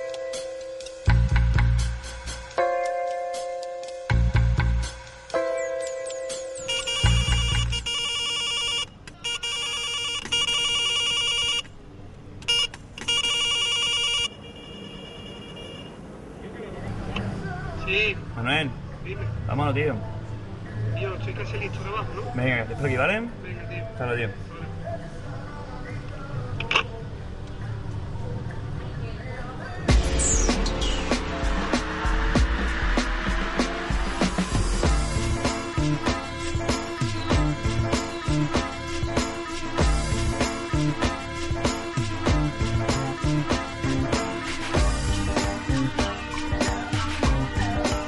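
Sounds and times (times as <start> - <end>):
background music with steady bass: 0.0 - 8.0, 29.8 - 48.0
electronic phone ringtone trilling: 5.4 - 11.7, 12.5 - 15.9.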